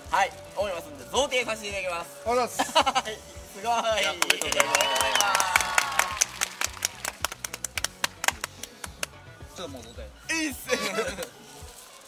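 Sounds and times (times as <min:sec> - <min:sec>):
background music: 0:00.0 - 0:12.0
people clapping: 0:04.0 - 0:09.2.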